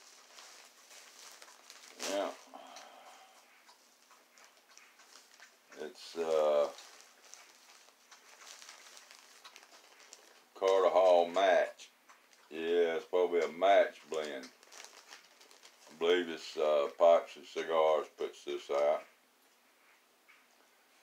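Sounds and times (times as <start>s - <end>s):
plastic zipper bag crinkling: 0.0s - 2.8s, 5.0s - 10.9s, 14.0s - 16.0s
man's voice murmuring: 5.8s - 6.8s.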